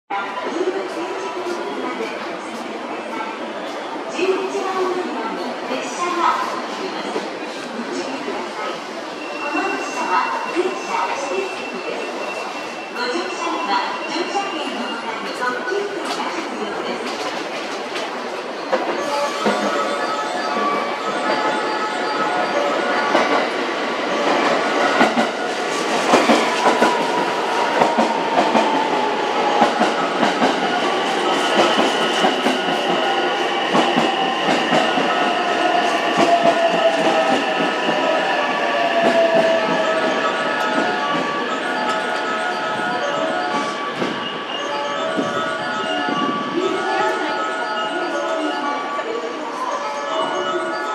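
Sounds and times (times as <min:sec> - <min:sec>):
electric train pulling away: 0:19.2 - 0:46.6.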